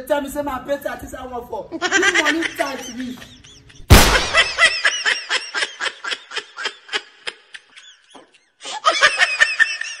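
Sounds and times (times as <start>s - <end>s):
hearty human laughter: 1.8s - 10.0s.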